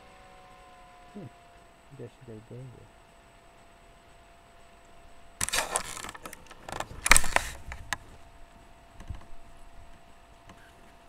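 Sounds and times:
webcam handling rustling and scraping: 5.4 - 8.2.

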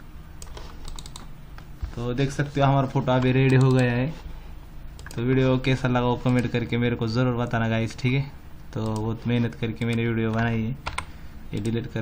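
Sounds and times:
faint low hum: 0.0 - 12.0
computer key clicks: 0.4 - 1.3, 5.0 - 5.2.

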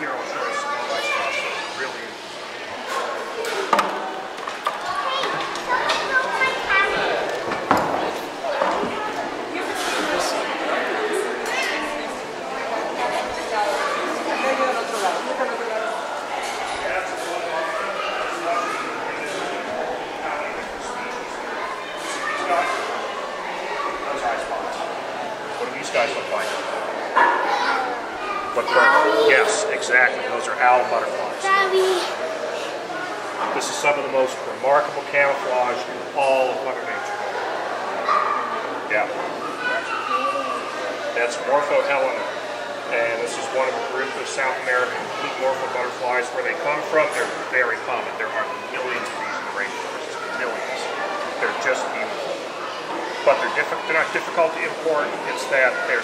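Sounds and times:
voices echoing in a hall: 0.0 - 56.0.

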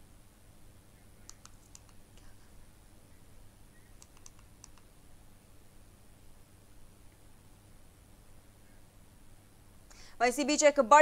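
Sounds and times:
low hum and hiss: 0.0 - 11.0
faint sharp clicks: 1.2 - 2.3, 4.0 - 4.9.

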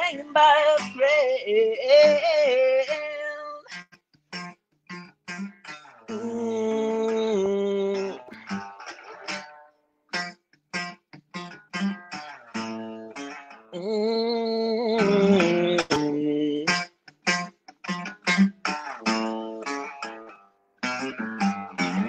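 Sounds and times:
acoustic guitar plucked chords: 0.0 - 3.0, 3.7 - 22.0.

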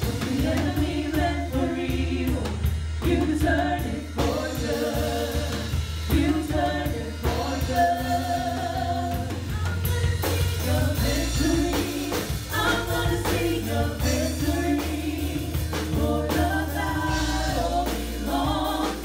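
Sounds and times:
drum kit: 0.0 - 19.0
guitar: 0.0 - 19.0
steady bass line: 0.0 - 19.0
women singing together: 0.0 - 19.0.

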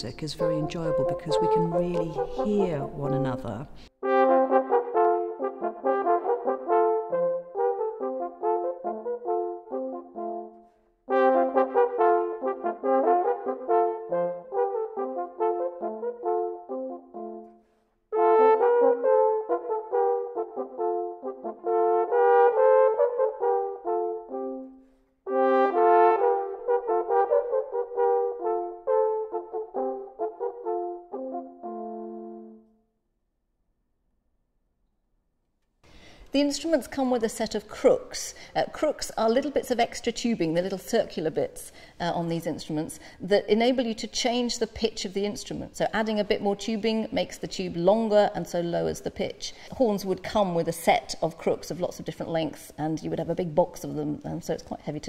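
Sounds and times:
two natural horns playing duet: 0.0 - 32.7.

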